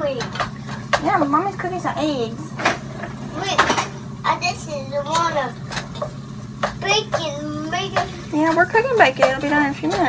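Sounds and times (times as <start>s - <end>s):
steady low hum: 0.0s - 10.0s
young child speaking: 3.3s - 5.6s, 6.7s - 8.3s.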